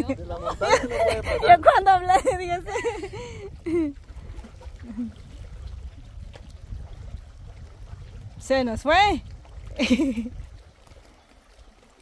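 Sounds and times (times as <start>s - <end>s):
wind buffeting microphone: 0.0s - 11.7s.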